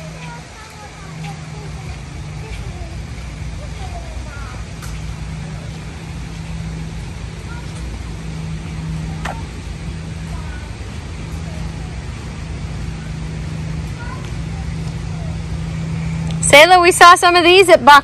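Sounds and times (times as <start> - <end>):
rumbling background: 0.0 - 18.0
steady low hum: 0.0 - 18.0.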